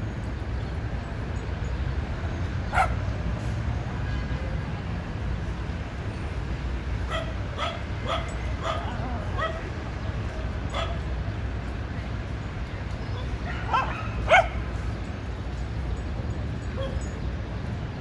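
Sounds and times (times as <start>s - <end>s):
small dog yipping: 16.7s - 17.2s.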